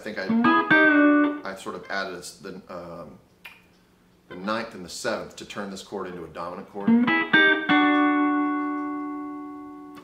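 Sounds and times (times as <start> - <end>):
slide electric guitar chord ringing: 0.0 - 1.4, 6.8 - 10.0.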